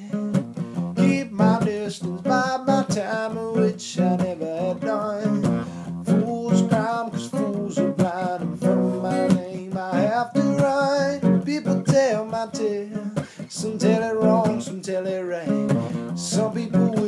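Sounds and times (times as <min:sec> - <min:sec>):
acoustic guitar strumming: 0:00.0 - 0:17.0
man singing: 0:00.0 - 0:17.0.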